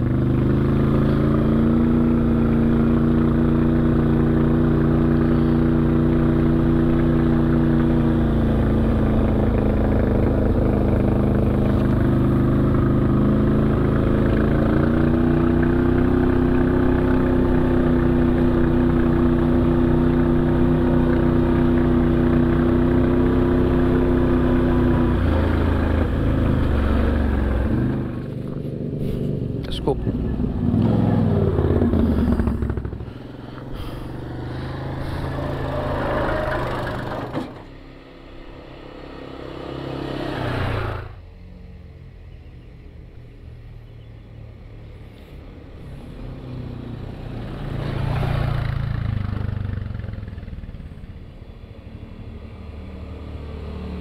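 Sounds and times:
off-road vehicle engine: 0.0s - 54.0s.

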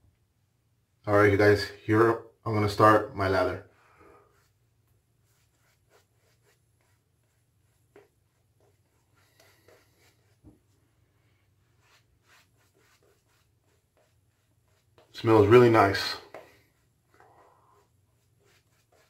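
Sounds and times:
shaving brush on face: 5.2s - 10.5s, 11.6s - 19.0s.

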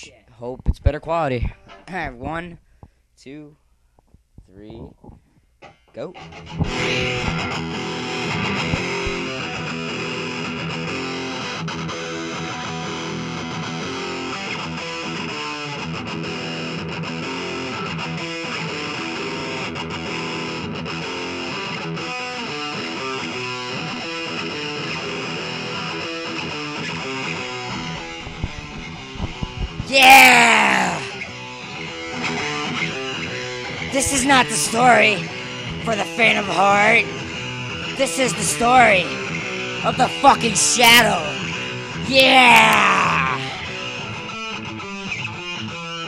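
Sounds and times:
electric guitar riff: 5.6s - 46.0s.

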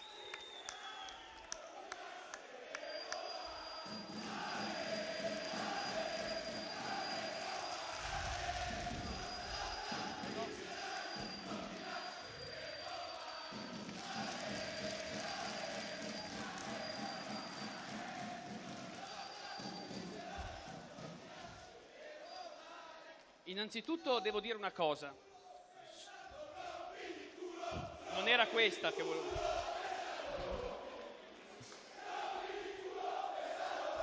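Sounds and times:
crowd chanting in unison: 1.6s - 23.4s, 25.4s - 34.0s.

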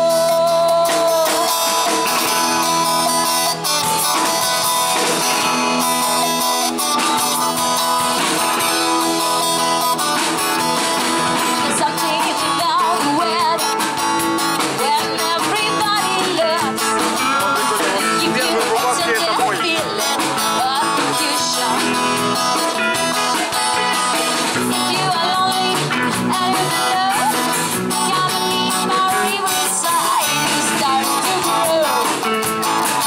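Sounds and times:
live band music: 0.0s - 33.0s.

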